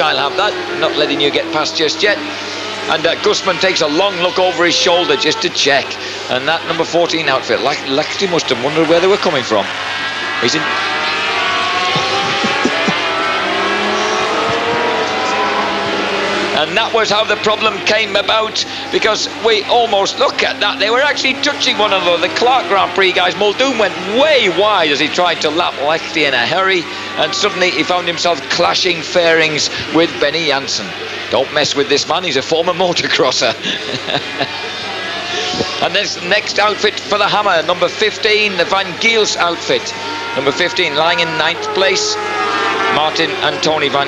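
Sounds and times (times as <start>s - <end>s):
racing engines passing: 0.0s - 44.0s
tv commentary: 0.0s - 44.0s
commentator laughing: 3.9s - 6.7s, 11.6s - 28.4s, 29.5s - 30.2s, 33.1s - 35.8s.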